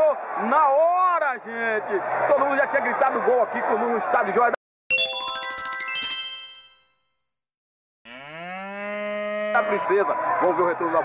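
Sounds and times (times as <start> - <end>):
bell-like transition chime: 4.9 - 6.9.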